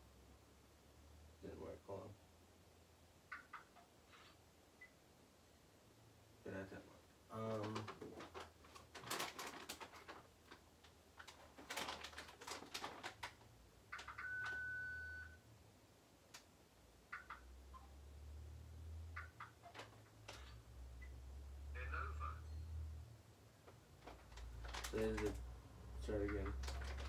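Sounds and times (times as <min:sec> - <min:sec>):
device clicks and taps: 0:03.3 - 0:03.9, 0:17.1 - 0:17.9.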